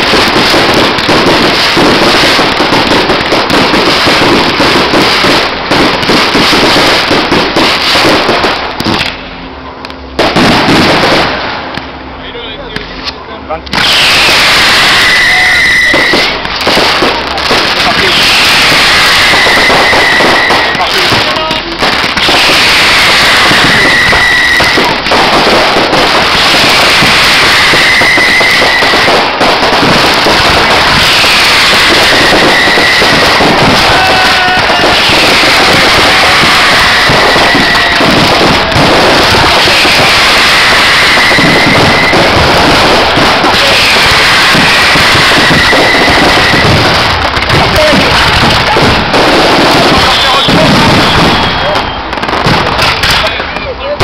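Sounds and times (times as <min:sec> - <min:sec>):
fireworks crackling and banging: 0:00.0 - 0:54.0
falling whistle-like tone: 0:13.8 - 0:16.3, 0:23.0 - 0:24.8.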